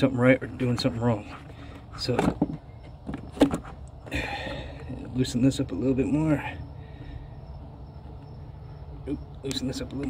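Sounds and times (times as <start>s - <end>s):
rubber hose rubs and knocks: 0.6s - 4.1s.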